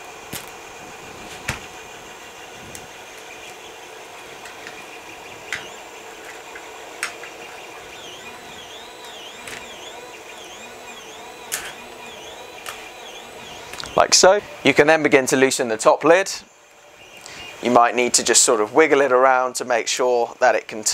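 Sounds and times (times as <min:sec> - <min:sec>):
steady background hum: 0:00.0 - 0:20.9
sharp plastic clicks and taps: 0:06.3 - 0:07.4.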